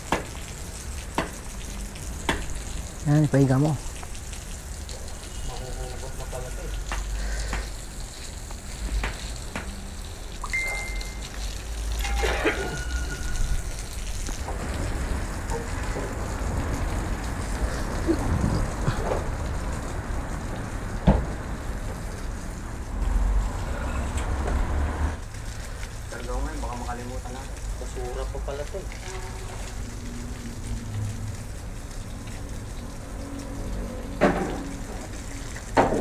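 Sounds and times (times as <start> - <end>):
hose water spraying on concrete: 0.0 - 36.0.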